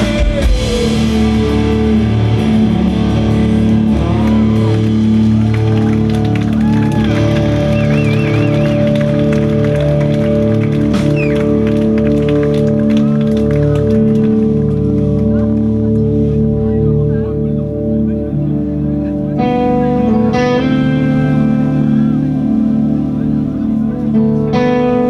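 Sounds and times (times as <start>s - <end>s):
bass guitar: 0.0s - 25.0s
bending high guitar notes: 0.0s - 25.0s
electric guitars ringing chords: 0.0s - 25.0s.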